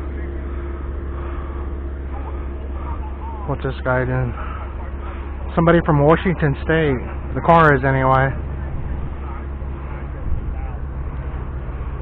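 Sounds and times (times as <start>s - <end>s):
car engine running: 0.0s - 12.0s
faint steady hum: 0.0s - 12.0s.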